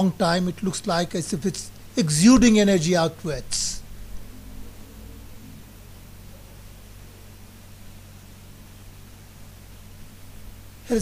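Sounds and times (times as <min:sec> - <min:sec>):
faint hiss: 0:00.0 - 0:11.0
low hum: 0:00.0 - 0:11.0.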